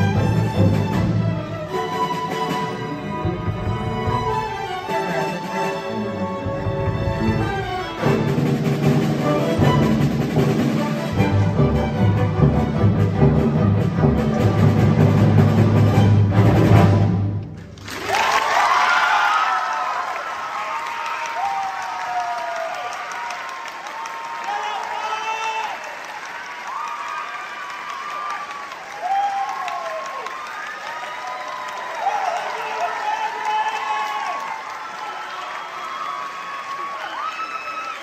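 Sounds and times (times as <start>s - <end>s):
audience applauding: 17.4s - 38.0s
whoops and shouts: 18.1s - 25.8s, 26.6s - 38.0s.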